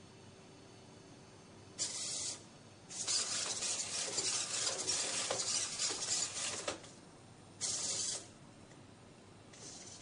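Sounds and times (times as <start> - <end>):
robot servo motors whirring: 1.8 - 6.8, 7.6 - 8.3.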